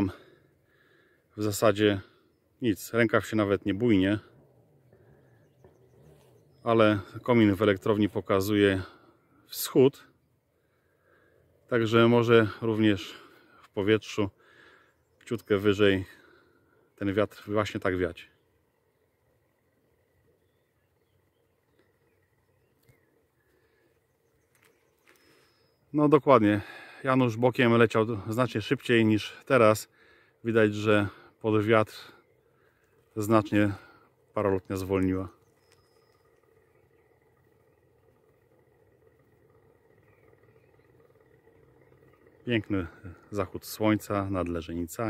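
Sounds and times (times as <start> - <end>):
distant paramotor engine drone: 0.0 - 45.0
faint outdoor ambience: 0.0 - 45.0.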